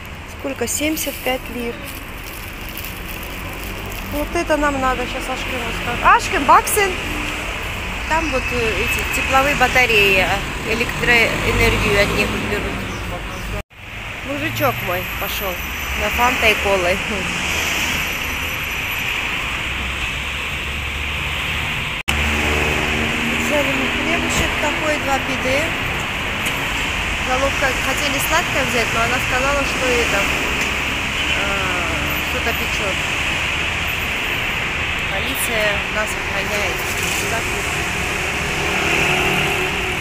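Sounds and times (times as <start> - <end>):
voices: 0.0 - 13.6, 14.2 - 17.5, 23.3 - 26.6, 27.2 - 33.2, 34.8 - 40.0
outdoor street background noise: 0.0 - 40.0.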